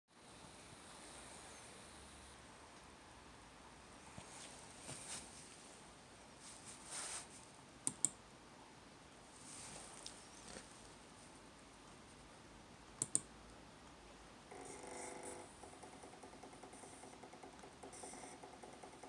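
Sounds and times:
faint handling rustle: 4.1s - 7.6s, 9.3s - 11.4s.

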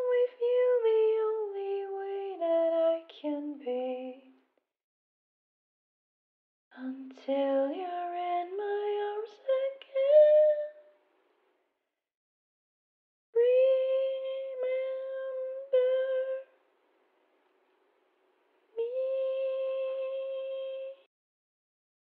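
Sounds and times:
woman singing softly: 0.0s - 4.5s, 6.7s - 11.0s, 13.4s - 16.6s, 18.7s - 21.1s.

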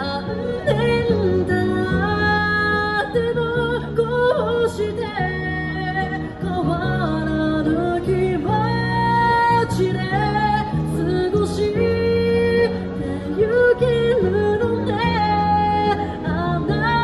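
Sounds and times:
woman singing into a microphone: 0.0s - 17.0s.

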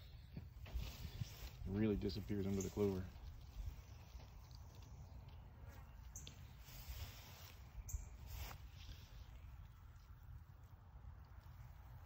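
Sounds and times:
leaves rustling: 0.1s - 12.0s
low steady rumble: 3.0s - 12.0s.

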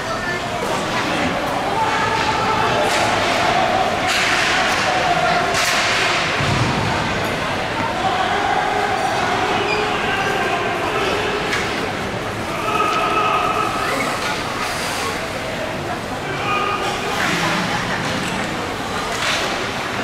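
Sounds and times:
voices calling out: 7.0s - 20.0s.

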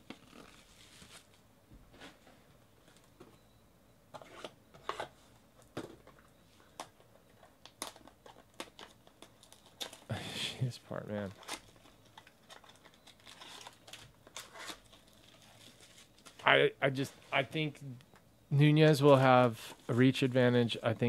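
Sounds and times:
plastic wrapping crinkling and tearing: 7.8s - 10.1s, 11.2s - 16.5s
person speaking: 16.4s - 21.0s.

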